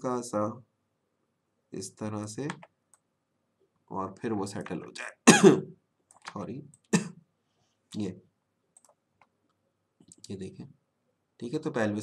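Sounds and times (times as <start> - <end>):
person speaking: 1.8 - 2.7, 3.9 - 7.1, 8.0 - 8.2
computer mouse clicks: 2.5 - 3.0, 6.1 - 6.9, 8.8 - 10.4.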